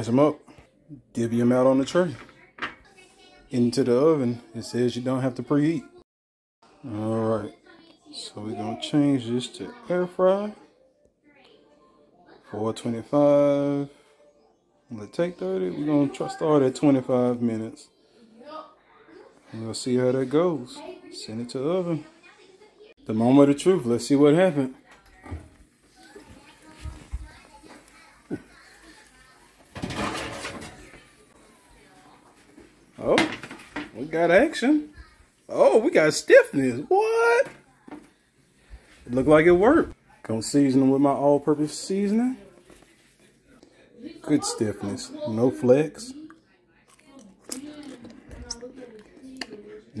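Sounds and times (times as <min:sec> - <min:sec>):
faint children's voices: 0:00.0 - 0:06.0, 0:06.6 - 0:50.0.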